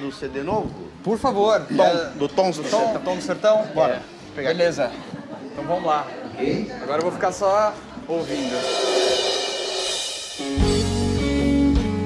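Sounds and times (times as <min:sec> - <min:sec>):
live band playing: 0:08.2 - 0:12.0
guitar: 0:10.2 - 0:12.0.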